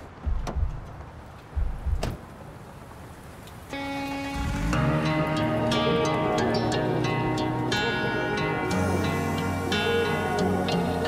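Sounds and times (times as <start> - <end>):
truck door opening and shutting: 0.0 - 2.2
held musical chord: 3.8 - 11.0.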